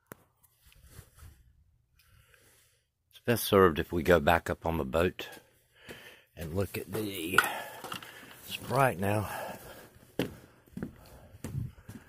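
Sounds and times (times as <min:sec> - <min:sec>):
footsteps on a boat deck: 0:09.3 - 0:12.0.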